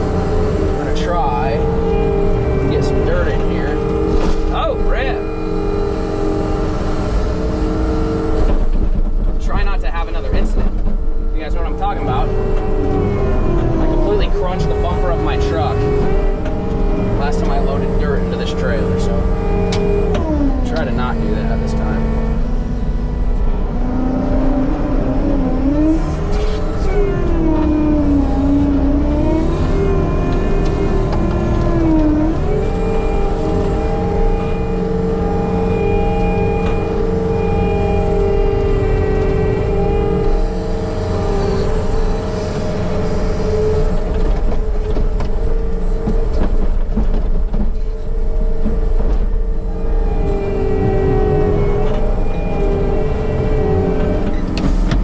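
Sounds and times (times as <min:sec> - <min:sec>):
loader engine and hydraulics: 0:00.0 - 0:55.0.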